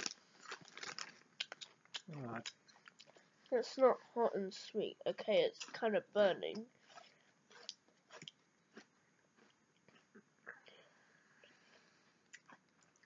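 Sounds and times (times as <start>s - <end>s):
crisps being chewed: 0.0s - 3.2s, 6.9s - 10.6s, 12.3s - 13.0s.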